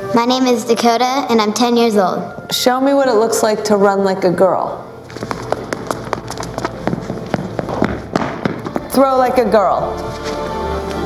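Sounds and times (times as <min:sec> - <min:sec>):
footsteps running on studio floor: 0:05.0 - 0:09.0.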